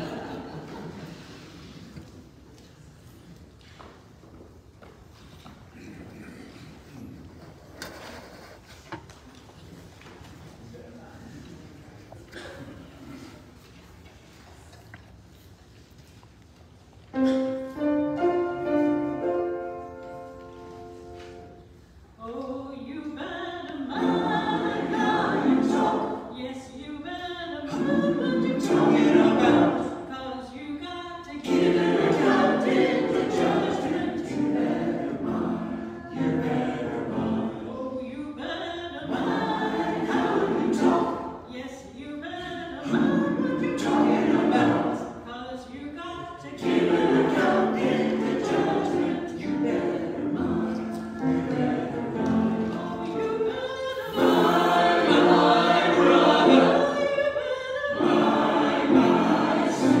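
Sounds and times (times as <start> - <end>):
mixed choir singing: 0.0 - 1.6, 23.0 - 45.4, 46.0 - 60.0.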